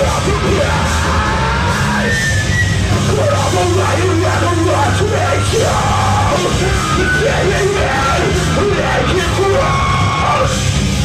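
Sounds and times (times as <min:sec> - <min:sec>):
wavering lead vocal: 0:00.0 - 0:10.6
bass guitar: 0:00.0 - 0:11.0
distorted electric guitars: 0:00.0 - 0:11.0
drums: 0:00.0 - 0:11.0.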